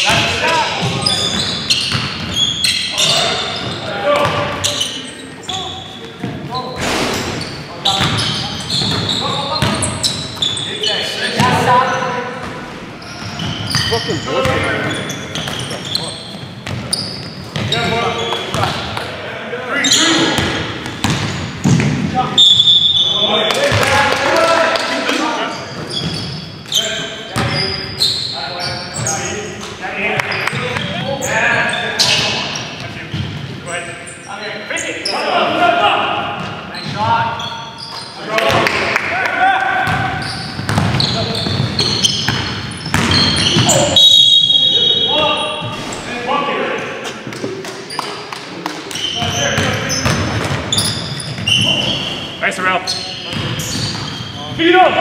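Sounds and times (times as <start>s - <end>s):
sneakers squeaking: 0.0s - 24.0s, 24.8s - 35.4s, 36.0s - 38.8s, 39.6s - 46.2s, 46.9s - 55.0s
basketball bouncing on court: 0.1s - 2.6s, 6.2s - 10.6s, 12.4s - 19.0s, 20.4s - 22.1s, 27.4s - 27.6s, 39.8s - 44.8s, 48.9s - 51.9s, 53.3s - 54.4s.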